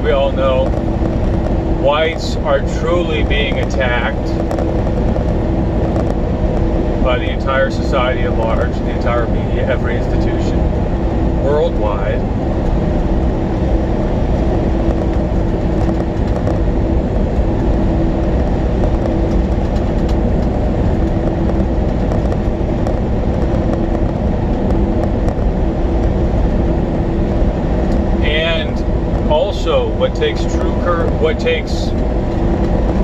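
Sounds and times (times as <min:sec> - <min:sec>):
steady hum: 0:00.0 - 0:33.0
truck engine and road noise: 0:00.0 - 0:33.0.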